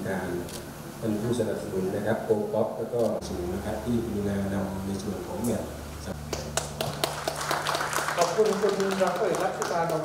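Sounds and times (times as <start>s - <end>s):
audience clapping: 6.3s - 10.0s.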